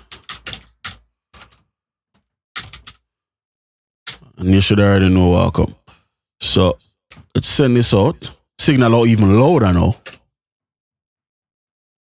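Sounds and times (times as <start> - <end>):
keyboard keys clicking: 0.0 - 1.6, 2.6 - 3.0.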